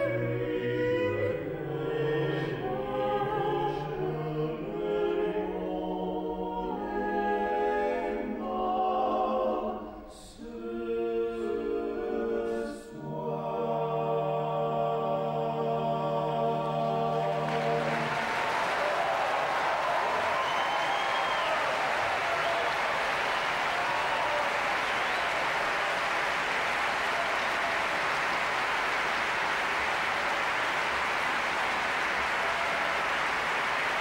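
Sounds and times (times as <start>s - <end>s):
audience applauding: 17.0s - 34.0s.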